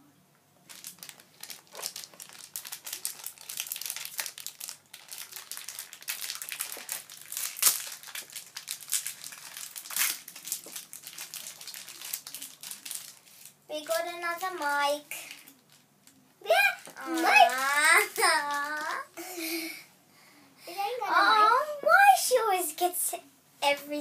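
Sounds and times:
foil packet crackling: 0.6 - 19.6.

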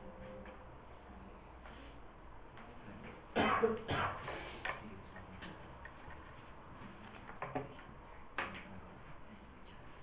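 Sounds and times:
faint clicks and taps: 4.6 - 8.8.

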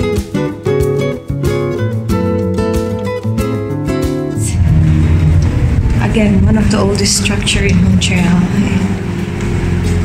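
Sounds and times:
acoustic guitar music: 0.0 - 10.0
car cabin rumble: 4.4 - 9.0.

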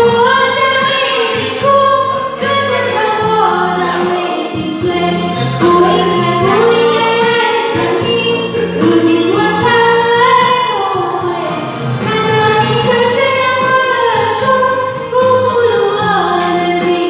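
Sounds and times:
recorded backing track: 0.0 - 17.0
woman singing karaoke: 0.0 - 17.0.

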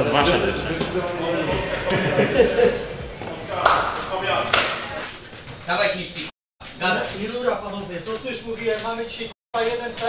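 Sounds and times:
indistinct men's voices: 0.0 - 4.5.

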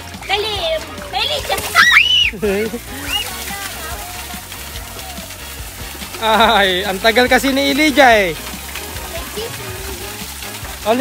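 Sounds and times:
background music: 0.0 - 11.0
water jets splashing on metal grate: 0.0 - 11.0.

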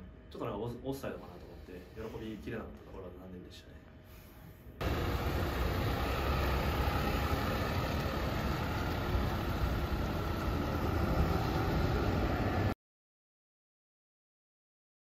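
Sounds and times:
coach engine driving past: 4.8 - 12.8
road noise: 4.8 - 12.8.

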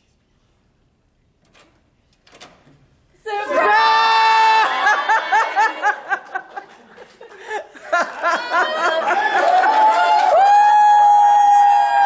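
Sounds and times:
latch and door clatter: 1.4 - 2.9.

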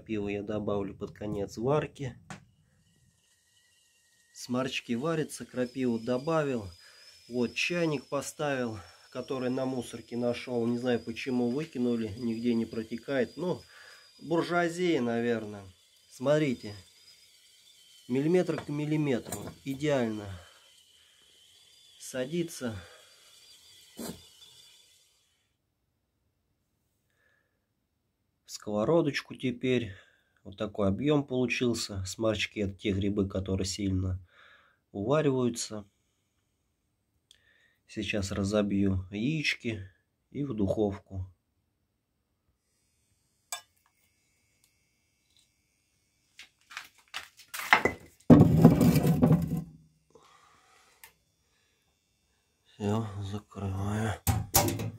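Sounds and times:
kettle hissing on stove: 0.0 - 25.6, 42.5 - 48.0, 49.0 - 54.9
iron pan scraping on brick: 47.7 - 49.7
person speaking a word: 52.8 - 54.2.

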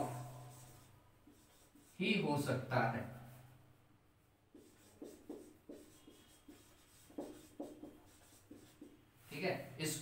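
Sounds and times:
marker pen writing on whiteboard: 0.0 - 2.5, 4.4 - 9.2.

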